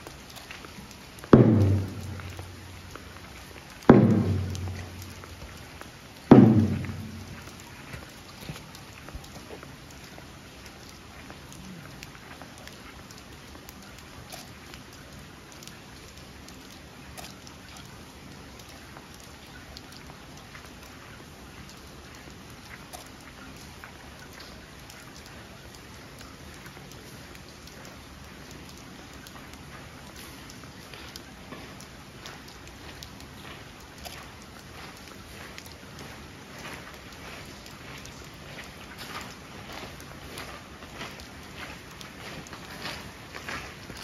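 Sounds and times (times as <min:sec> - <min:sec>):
rain falling on gravel: 0:00.0 - 0:44.0
large drum booming: 0:01.4 - 0:02.7, 0:03.9 - 0:05.3, 0:06.3 - 0:07.5.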